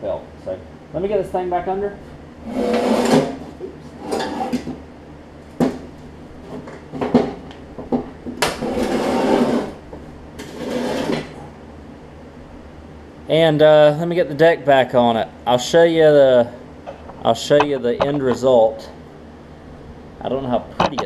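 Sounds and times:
metal clanks and scrapes: 4.0s - 4.7s
sharp knocks: 16.9s - 18.4s.

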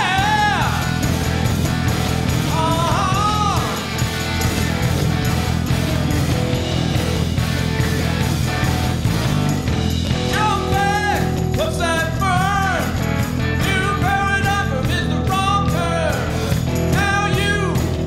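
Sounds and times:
person singing: 0.0s - 1.2s, 2.4s - 4.1s, 10.2s - 18.0s
drum kit: 0.0s - 18.0s
electric bass: 0.0s - 18.0s
electric guitar: 0.0s - 18.0s.

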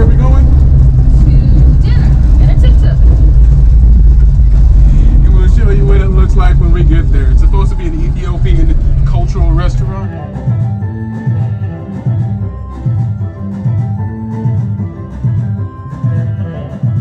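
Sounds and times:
engine and road rumble: 0.0s - 17.0s
voices: 1.2s - 3.1s, 4.4s - 10.5s.

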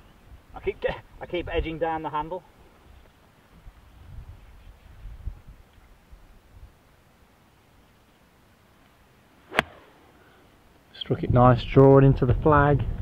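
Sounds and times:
golf club striking ball: 9.4s - 10.0s.

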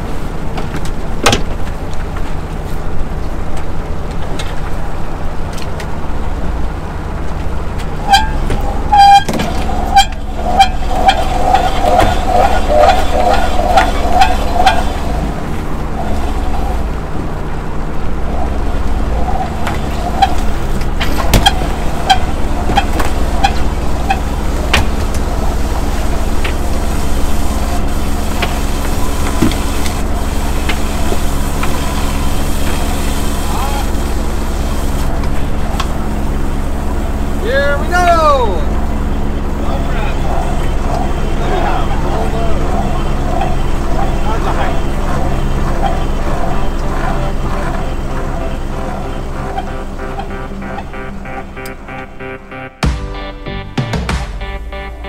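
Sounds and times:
boat engine humming: 0.0s - 55.0s
wavering whining tone: 8.0s - 34.3s.

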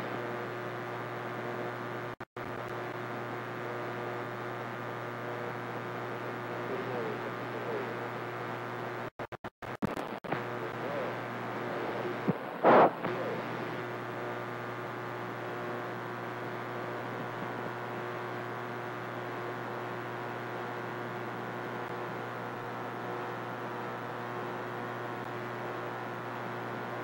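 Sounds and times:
constant low hum: 0.0s - 27.0s
radio static hiss: 0.0s - 27.0s.

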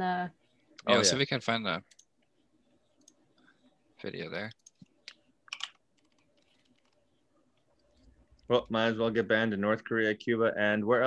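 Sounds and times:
typing on computer keyboard: 5.5s - 7.0s.

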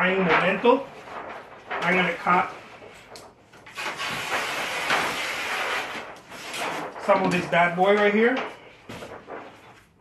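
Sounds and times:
paper pulled off a roll: 0.0s - 10.0s.

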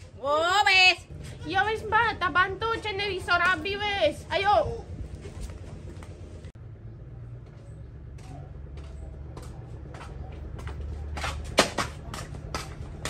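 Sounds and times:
steady low rumble: 1.0s - 8.1s
footsteps approaching: 1.1s - 6.6s, 7.3s - 13.0s.

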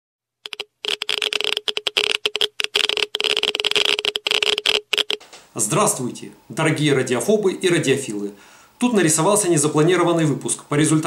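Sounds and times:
dosimeter crackling clicks: 0.5s - 5.6s.

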